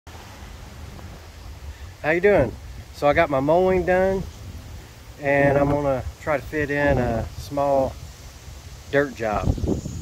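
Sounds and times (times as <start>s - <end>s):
wind buffeting microphone: 0.4s - 10.0s.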